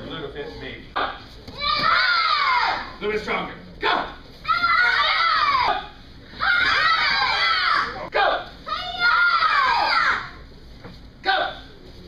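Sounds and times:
room noise in a large hall: 0:00.0 - 0:12.0.

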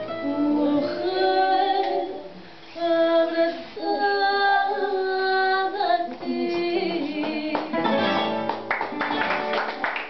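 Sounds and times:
guitars accompanying: 0:00.0 - 0:02.4, 0:06.1 - 0:10.0
woman singing: 0:00.0 - 0:08.1.

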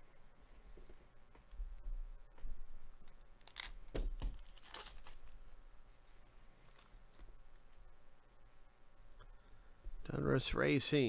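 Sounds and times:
foil wrapper crinkling: 0:03.4 - 0:05.5, 0:06.6 - 0:07.2
cutter slitting foil pack: 0:04.4 - 0:05.4.

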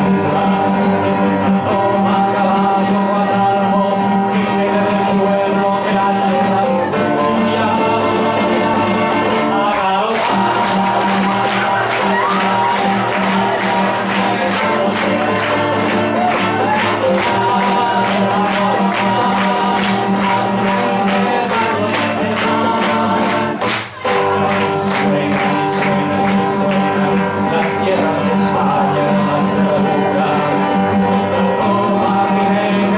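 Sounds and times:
acoustic guitar strumming: 0:00.0 - 0:32.9
people singing: 0:00.0 - 0:32.9.

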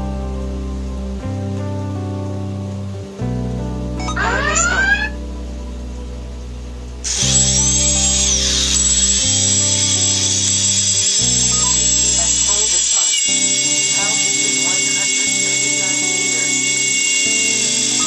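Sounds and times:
background music with sustained chords: 0:00.0 - 0:18.0
electric motors whining: 0:04.0 - 0:05.2, 0:07.0 - 0:18.0.

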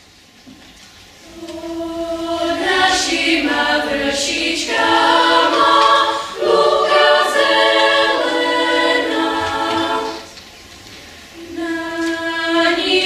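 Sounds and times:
children's choir singing: 0:01.2 - 0:10.4, 0:11.4 - 0:13.0.

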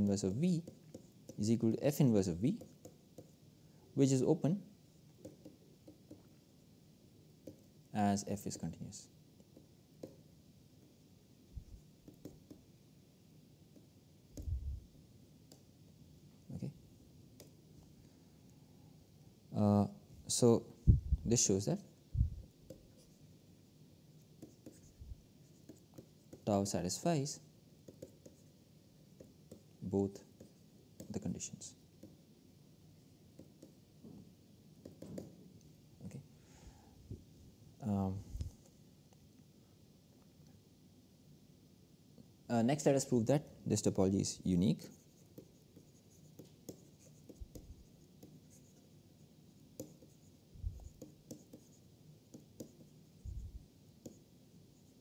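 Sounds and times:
stylus tapping and scratching on screen: 0:00.0 - 0:03.4, 0:05.0 - 0:06.5, 0:07.4 - 0:07.8, 0:09.4 - 0:11.0, 0:11.6 - 0:12.7, 0:13.7 - 0:14.8, 0:17.3 - 0:17.9, 0:20.9 - 0:23.3, 0:24.2 - 0:26.8, 0:27.8 - 0:32.3, 0:33.3 - 0:33.9, 0:34.8 - 0:35.7, 0:44.6 - 0:55.0
stylus tapping on tablet screen: 0:05.2 - 0:06.3, 0:07.4 - 0:07.7, 0:09.4 - 0:10.2, 0:12.0 - 0:12.7, 0:13.7 - 0:14.7, 0:17.4 - 0:17.6, 0:27.8 - 0:28.4, 0:33.3 - 0:33.8, 0:34.8 - 0:35.4, 0:45.3 - 0:48.6, 0:49.7 - 0:52.9
soft low thumps: 0:20.9 - 0:21.3.

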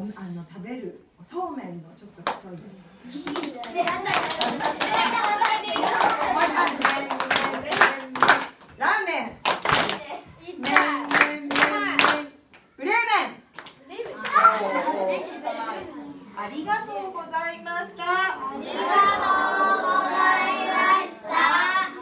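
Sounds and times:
rhythmic hand clapping: 0:03.2 - 0:08.7, 0:09.4 - 0:12.7, 0:13.5 - 0:14.4
voices singing along: 0:03.3 - 0:08.6, 0:10.5 - 0:12.4, 0:18.4 - 0:22.0.

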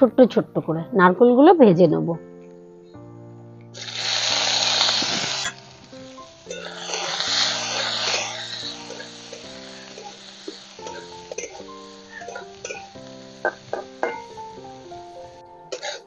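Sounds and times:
background music: 0:00.0 - 0:16.0
coconut sizzling in hot oil: 0:03.7 - 0:16.0
spatula stirring in wok: 0:06.4 - 0:14.4.

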